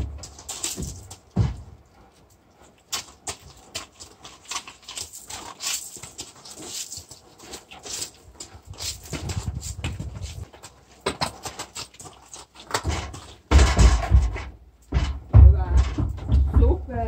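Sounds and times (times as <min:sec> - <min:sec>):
hooves scuffing on gravel: 0:00.0 - 0:17.0.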